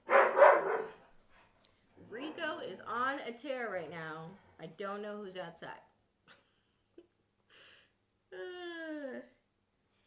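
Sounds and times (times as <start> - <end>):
dog barking: 0.0 - 1.0.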